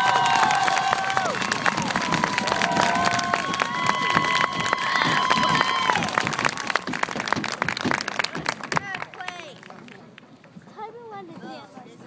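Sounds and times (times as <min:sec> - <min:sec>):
audience clapping: 0:00.0 - 0:10.3.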